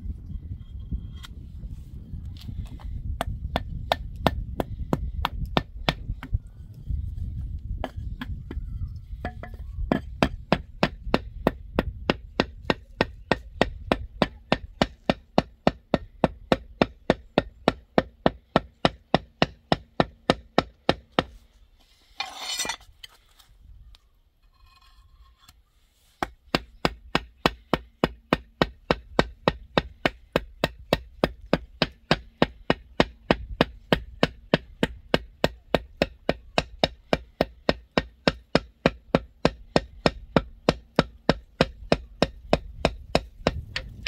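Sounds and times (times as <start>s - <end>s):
brief scrape: 21.8s - 23.5s.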